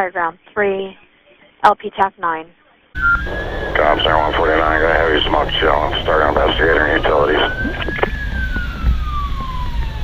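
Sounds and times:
engine rumble: 0:03.0 - 0:10.0
fire engine siren gliding down: 0:03.0 - 0:10.0.

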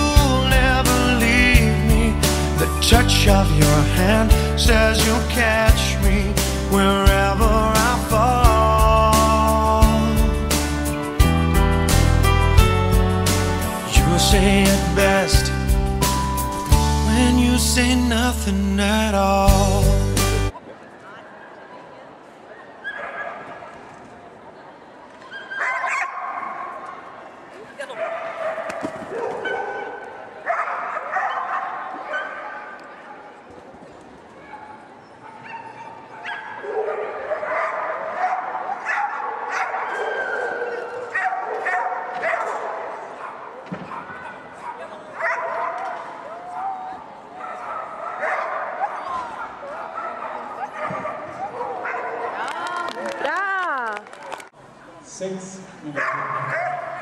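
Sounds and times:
murmur of people talking: 0:00.0 - 0:57.0
dogs barking and whining: 0:25.3 - 0:26.8, 0:27.9 - 0:32.8, 0:34.4 - 0:52.4, 0:56.0 - 0:57.0.

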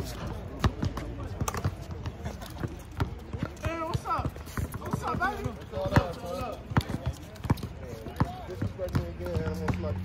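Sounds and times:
basketball bouncing on hard court: 0:00.6 - 0:09.9.

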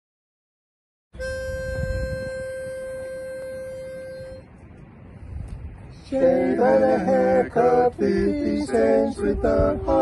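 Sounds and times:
pitch pipe note: 0:01.2 - 0:04.5
wind rumble on microphone: 0:01.2 - 0:10.0.

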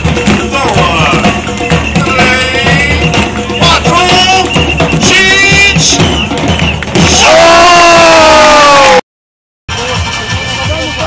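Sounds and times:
music with steady beat over loudspeakers: 0:00.0 - 0:08.4, 0:09.7 - 0:11.0.

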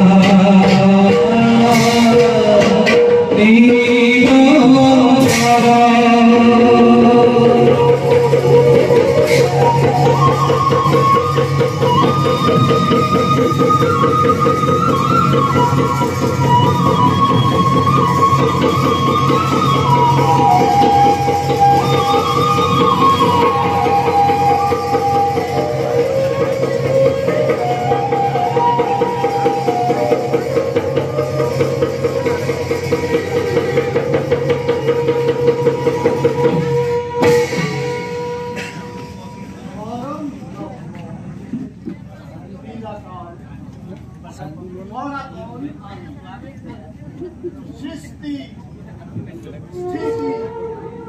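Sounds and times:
sustained instrumental melody: 0:00.0 - 0:41.0
drums playing steady rhythm: 0:00.0 - 0:44.9.

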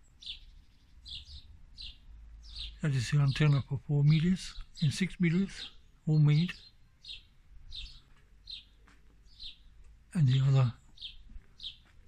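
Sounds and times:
bird chirping faintly: 0:00.0 - 0:12.0.

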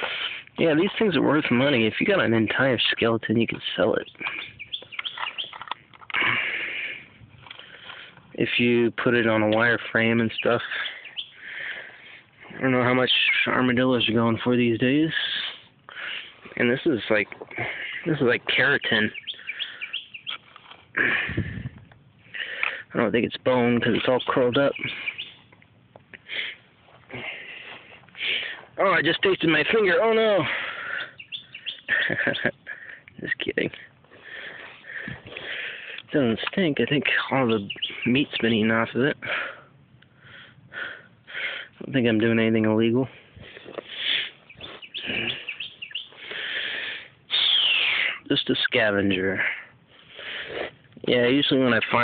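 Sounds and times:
small birds chirping: 0:00.0 - 0:52.0
bird chirps: 0:03.9 - 0:05.8, 0:09.9 - 0:11.6, 0:12.9 - 0:15.6, 0:17.5 - 0:20.6, 0:23.9 - 0:25.6, 0:30.7 - 0:33.4, 0:37.1 - 0:38.9, 0:44.0 - 0:46.4, 0:47.3 - 0:48.2
sniffs close by: 0:50.0 - 0:50.9.

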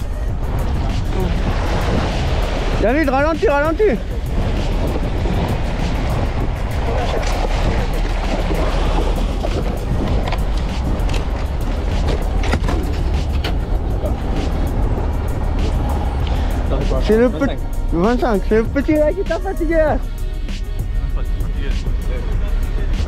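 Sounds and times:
boat engine rumble: 0:00.0 - 0:23.0
water splashing against hull: 0:00.0 - 0:23.0.

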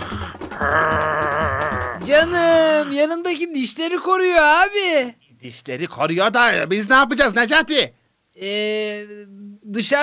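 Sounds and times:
cartoon dog growling: 0:00.0 - 0:02.0
background music with low beat: 0:00.0 - 0:02.6.

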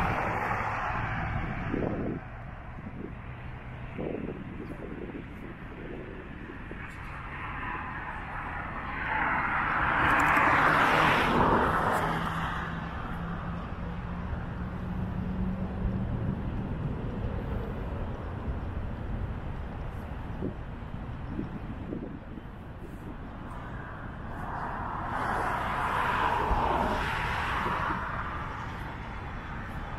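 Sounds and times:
vehicle passing by: 0:00.0 - 0:18.8, 0:22.8 - 0:29.9.

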